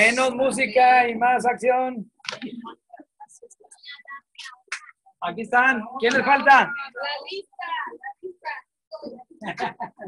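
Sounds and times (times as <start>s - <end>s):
faint speech and whispering: 2.3s - 5.2s.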